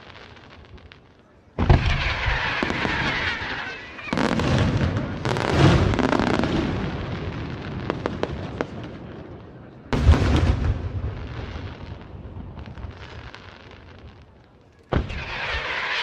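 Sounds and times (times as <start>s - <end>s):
firework pops: 1.6s - 6.1s, 12.0s - 16.0s.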